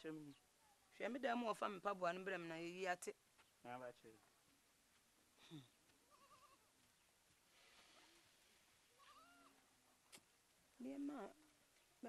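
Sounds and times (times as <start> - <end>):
faint wavering animal cries: 6.1 - 6.7, 9.0 - 9.6.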